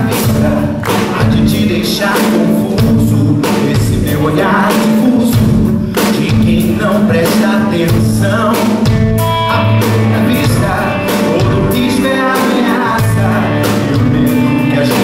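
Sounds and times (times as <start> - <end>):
guitar: 0.0 - 15.0
man singing into a microphone: 0.0 - 15.0
steady percussion beat: 0.0 - 15.0.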